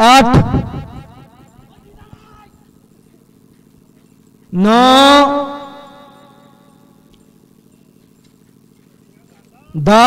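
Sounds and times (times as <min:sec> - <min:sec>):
man calling out loudly: 0:01.6 - 0:02.7, 0:04.5 - 0:06.5, 0:09.2 - 0:10.0.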